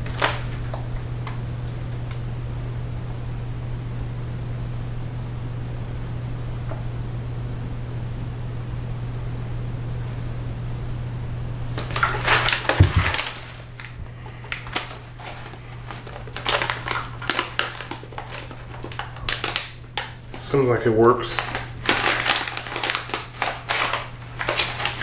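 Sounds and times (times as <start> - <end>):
plastic bag crinkling: 0.0 - 2.2, 11.7 - 25.0
steady low hum: 0.0 - 25.0.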